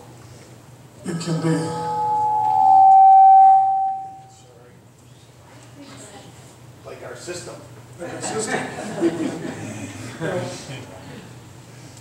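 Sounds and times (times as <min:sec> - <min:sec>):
sustained feedback tone: 0:01.2 - 0:04.4.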